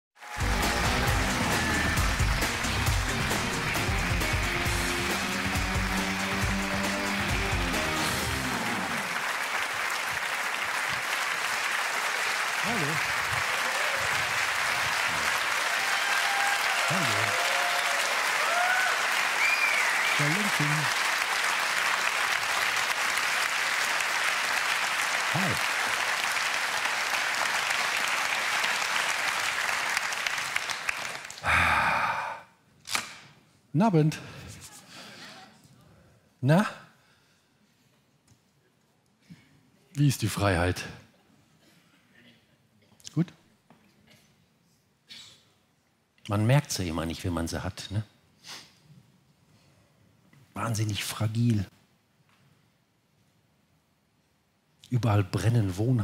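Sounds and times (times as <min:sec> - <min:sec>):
cheers: 0:00.2 - 0:10.0, 0:10.8 - 0:32.4
stage intro music: 0:00.2 - 0:10.0
audience applauding: 0:00.2 - 0:32.4.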